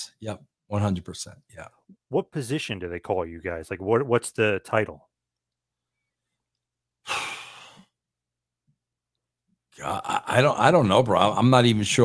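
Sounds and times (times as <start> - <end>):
man sighing: 7.0 - 7.9.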